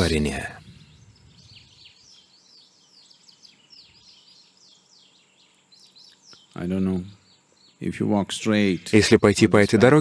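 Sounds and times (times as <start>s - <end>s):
faint birdsong chirps: 0.0s - 10.0s.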